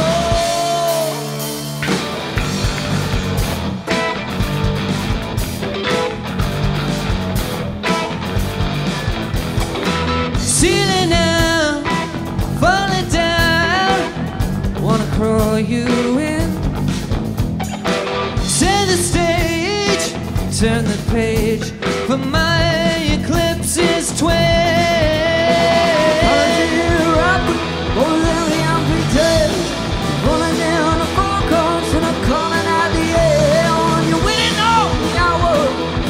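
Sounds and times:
man singing: 0.0 - 1.6, 10.4 - 16.7, 18.4 - 36.0
rock band playing live: 0.0 - 36.0.

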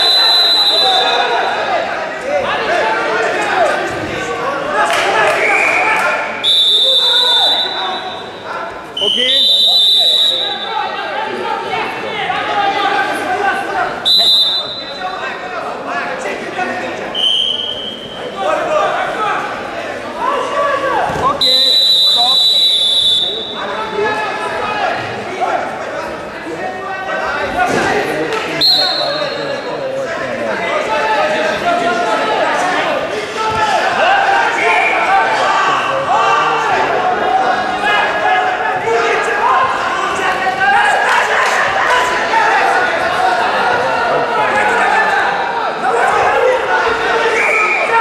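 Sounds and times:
high whistle tone: 0.0 - 1.2, 14.1 - 15.0, 17.2 - 18.3, 21.4 - 23.7
voices shouting and chattering: 0.0 - 48.0.

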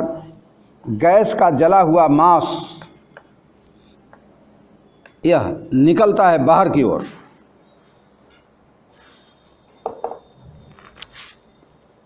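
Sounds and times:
chalk tapping on blackboard: 2.8 - 3.4.

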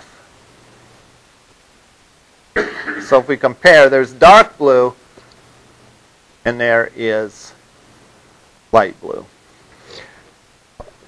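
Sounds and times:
faint room hiss: 0.0 - 11.0
man coughing: 2.6 - 3.2
man speaking: 3.0 - 5.0, 6.5 - 7.6, 8.8 - 9.3.

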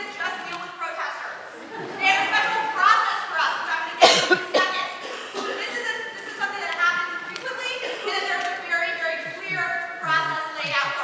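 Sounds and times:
person coughing: 4.0 - 5.8
woman speaking: 5.6 - 11.0.

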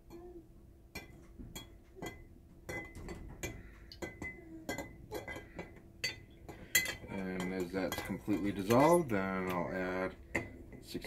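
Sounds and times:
stirrer clinking against glass jar: 0.9 - 11.0.

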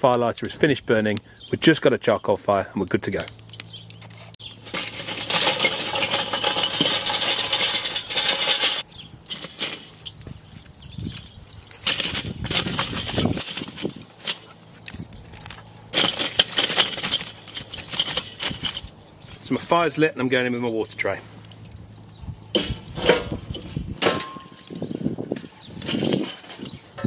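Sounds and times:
charcoal clattering in metal bowl: 3.1 - 27.0.

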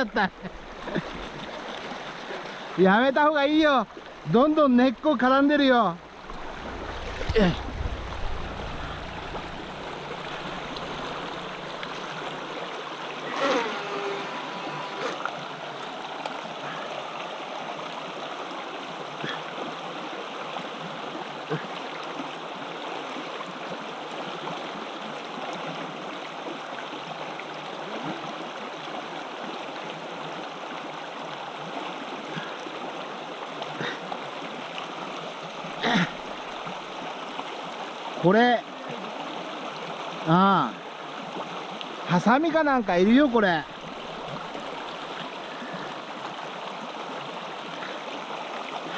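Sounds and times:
stream running over rocks: 0.0 - 48.9.

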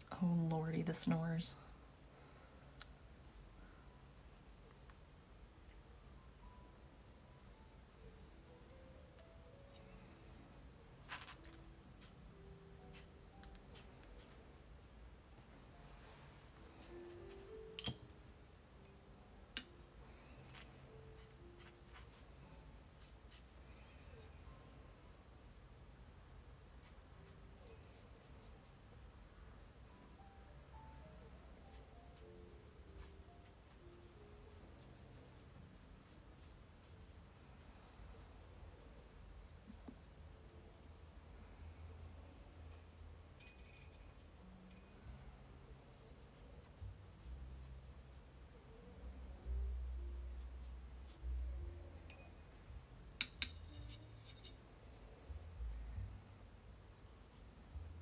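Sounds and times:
quiet background music: 0.0 - 58.0
light clink on glass or metal: 43.4 - 45.0.

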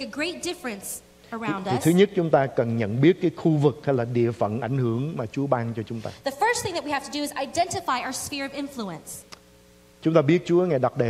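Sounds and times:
woman speaking into microphone: 0.0 - 2.0, 6.2 - 9.3
man speaking: 1.4 - 6.2, 10.0 - 11.0.

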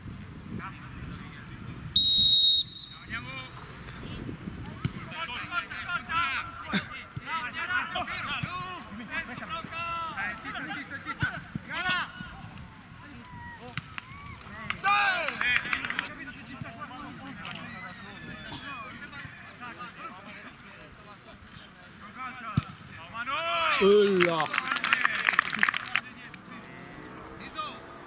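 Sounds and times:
referee's whistle blast: 2.0 - 3.5
footballers shouting: 4.7 - 20.8, 22.1 - 28.0
loud crowd shouting: 13.0 - 15.3.

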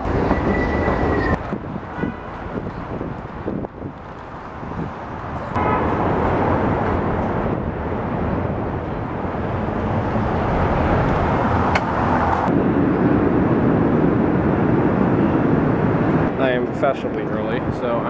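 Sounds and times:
passing street traffic: 0.0 - 18.0.

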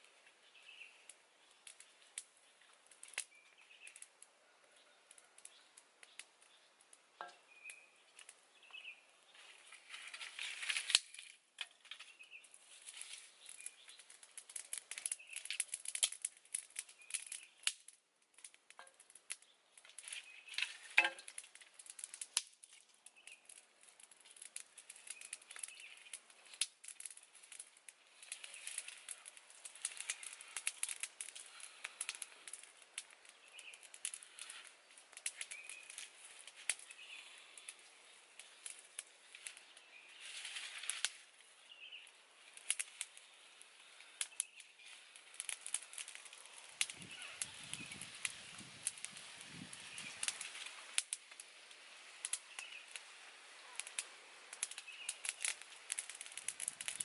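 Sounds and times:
rustling dry twigs and leaves: 0.0 - 57.0
dry sticks snapping: 1.1 - 4.3, 5.1 - 8.9, 9.6 - 51.5, 52.2 - 53.1, 53.7 - 57.0.

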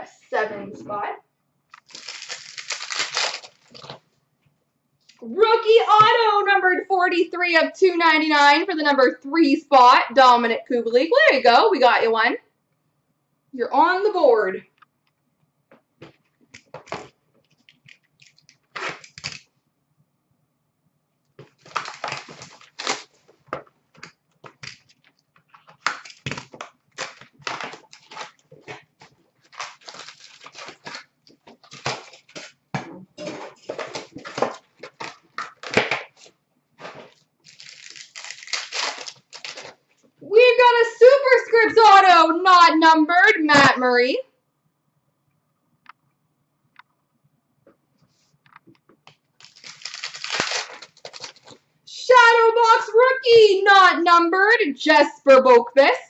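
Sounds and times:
card wrappers rustling and clicking: 1.7 - 4.0, 16.0 - 19.5, 21.4 - 40.1, 48.5 - 51.6
cards shuffling: 1.7 - 4.0, 16.1 - 19.4, 21.4 - 32.6, 33.2 - 39.8, 48.1 - 51.6
pack tearing open: 1.7 - 4.0, 16.6 - 19.5, 21.4 - 23.2, 24.0 - 32.6, 33.2 - 39.8, 49.4 - 51.6.

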